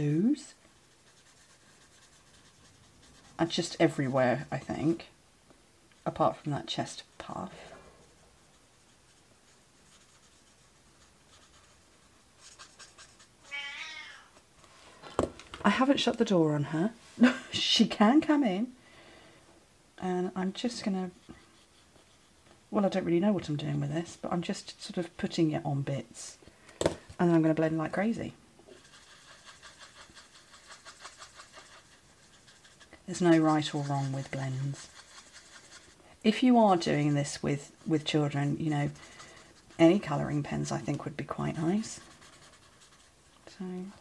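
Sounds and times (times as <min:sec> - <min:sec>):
marker tip rubbing on cardstock: 0:00.8 - 0:03.3, 0:28.8 - 0:36.0
cat meowing: 0:13.4 - 0:14.4.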